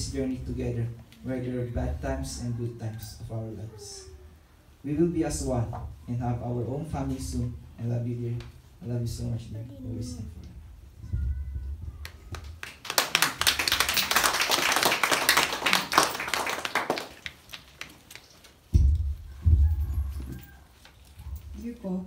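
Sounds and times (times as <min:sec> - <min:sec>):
people clapping: 0:12.0 - 0:18.6
microphone handling thumps: 0:18.7 - 0:20.4.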